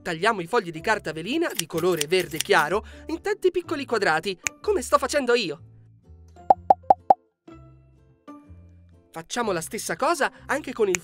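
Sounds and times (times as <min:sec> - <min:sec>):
soft background music: 0:00.0 - 0:11.0
cartoon pop sound effects: 0:06.5 - 0:07.2.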